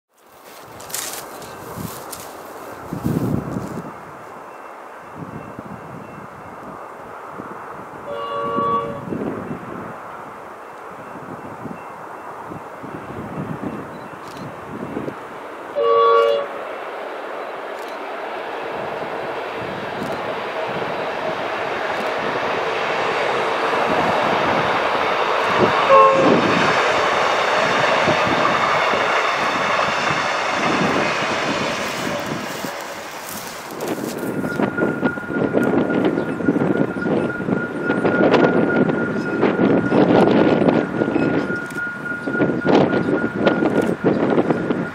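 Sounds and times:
train engine and wheel noise: 0.1 - 44.9
diesel locomotive horn blasts: 8.0 - 9.6, 15.7 - 16.7, 23.4 - 44.9.

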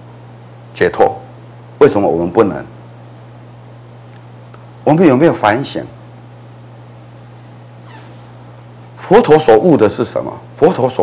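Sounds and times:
low electrical hum: 0.0 - 11.0
faint falling squeak: 7.8 - 8.4.

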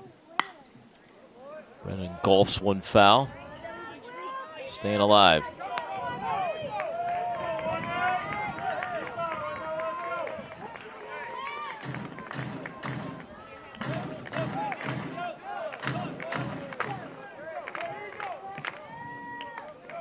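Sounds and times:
crowd voices: 0.0 - 20.0.

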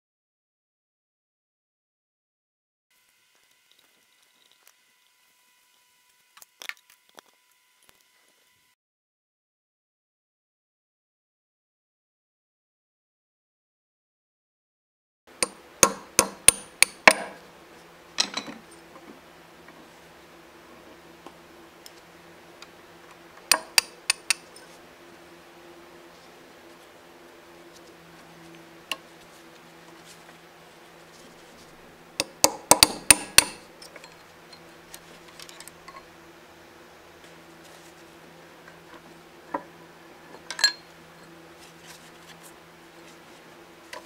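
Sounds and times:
hammer striking steel punch: 15.4 - 17.4, 32.2 - 33.7
mallet striking metal: 32.2 - 33.7.

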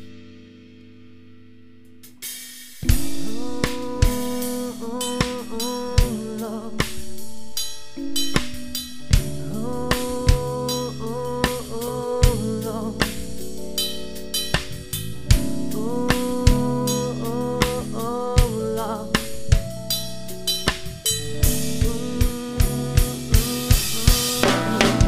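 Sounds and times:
drum kit playing: 2.0 - 25.0
pop-rock band song: 2.7 - 25.0
quiet held chord: 2.8 - 25.0.

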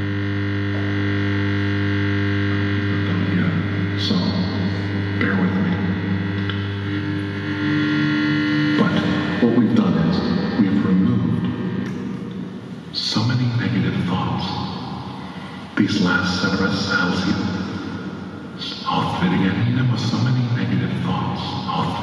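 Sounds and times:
distorted electric guitar drone: 0.0 - 22.0
man's voice: 2.8 - 12.0, 12.9 - 17.9, 18.5 - 22.0.

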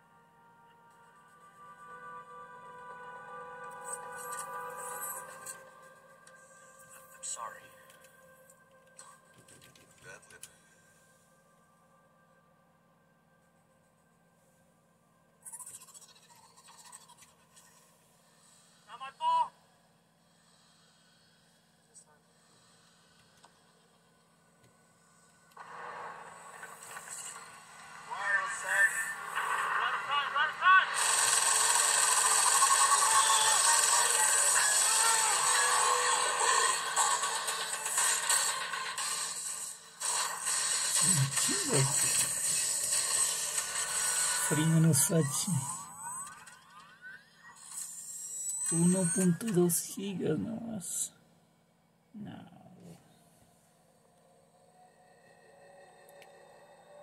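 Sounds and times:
film music and effects: 0.0 - 51.0, 53.3 - 57.0
voices: 28.1 - 31.0
man speaking: 44.5 - 45.8.

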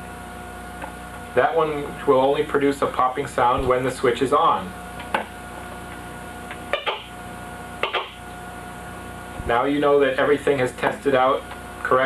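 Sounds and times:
faint steady hum: 0.0 - 12.0
short pops from loudspeaker: 7.8 - 8.2.

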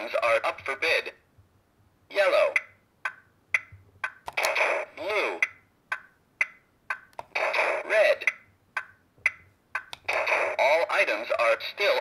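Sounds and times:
computer voice announcements: 2.1 - 2.7.

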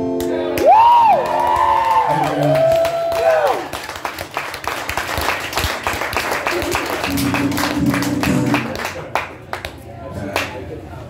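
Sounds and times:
audience clapping: 0.2 - 10.6
whoops and cheers: 0.5 - 3.8.

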